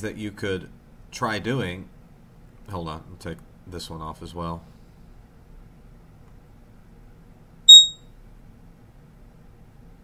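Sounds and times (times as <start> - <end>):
high electronic ping: 7.7 - 8.0.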